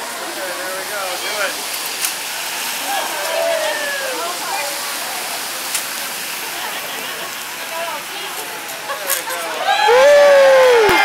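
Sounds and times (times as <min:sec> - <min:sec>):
faint voices: 0:00.0 - 0:11.0
rain hissing on wet street: 0:00.0 - 0:11.0.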